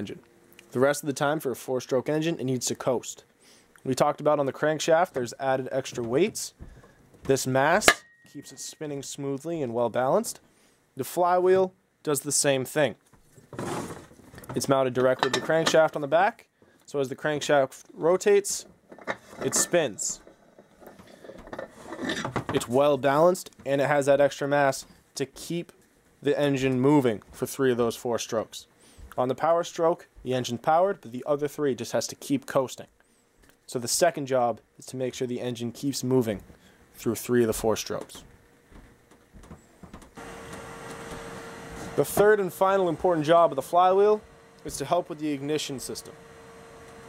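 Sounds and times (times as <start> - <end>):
steady background hiss: 0.0 - 46.7
machine hum: 38.3 - 47.0.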